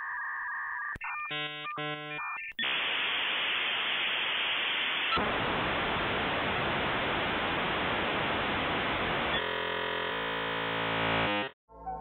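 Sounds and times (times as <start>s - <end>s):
electronic buzz: 1.1s - 11.6s
static hiss: 2.6s - 9.4s.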